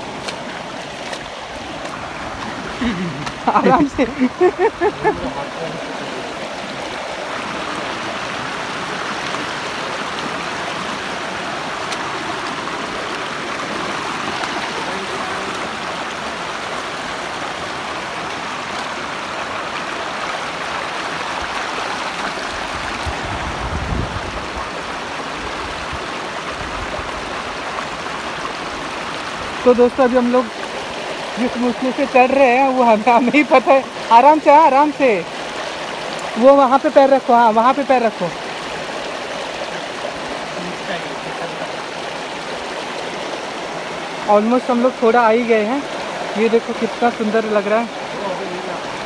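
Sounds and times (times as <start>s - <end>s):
stream rushing over rocks: 0.0s - 49.0s.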